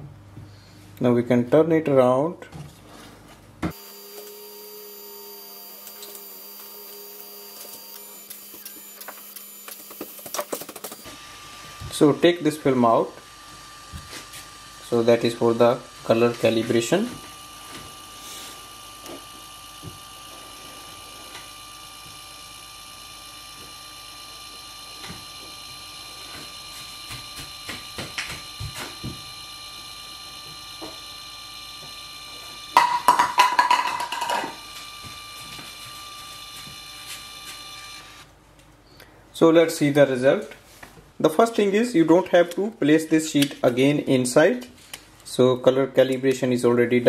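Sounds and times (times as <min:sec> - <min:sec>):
photo printer motor whine: 0:03.7 - 0:33.4, 0:34.0 - 0:38.3.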